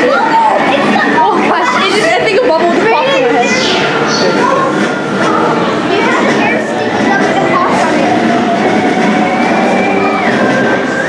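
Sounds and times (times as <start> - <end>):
dense wash of noise: 0.0 - 11.0
held synth tones: 0.1 - 11.0.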